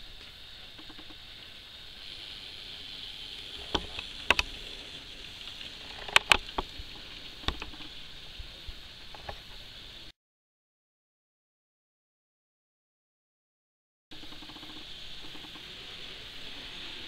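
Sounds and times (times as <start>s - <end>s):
small electric motor whirring: 0.8s - 7.8s.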